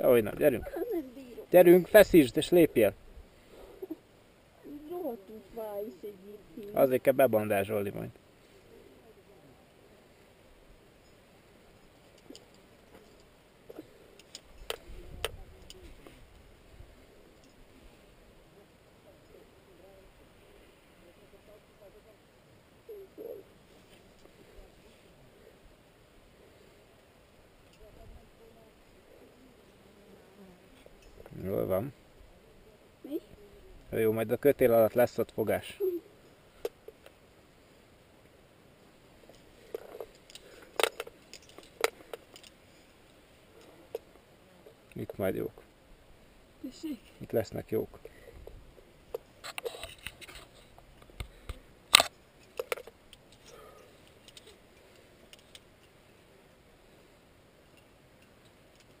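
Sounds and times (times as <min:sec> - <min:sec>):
metallic clicks of climbing hardware: 0:12.1 - 0:16.4, 0:39.3 - 0:42.6, 0:48.4 - 0:56.0, 0:57.7 - 0:59.0
clicks and scrapes of gear: 0:49.4 - 0:50.8.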